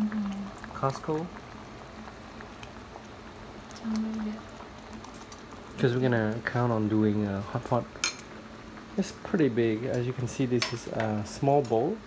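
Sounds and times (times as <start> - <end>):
broth boiling: 0.0 - 12.0.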